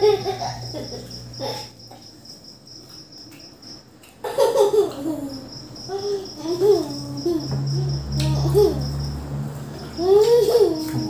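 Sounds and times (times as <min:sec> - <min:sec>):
cricket chirping: 0:00.0 - 0:11.0
child chewing: 0:01.5 - 0:11.0
child humming: 0:05.0 - 0:09.0.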